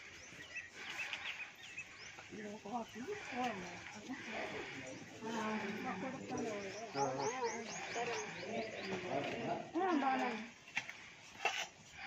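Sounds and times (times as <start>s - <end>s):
bird chirping: 0.0s - 10.1s.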